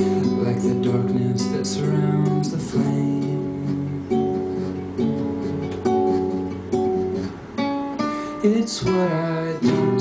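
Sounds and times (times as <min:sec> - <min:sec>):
acoustic guitar chords ringing: 0:00.0 - 0:10.0.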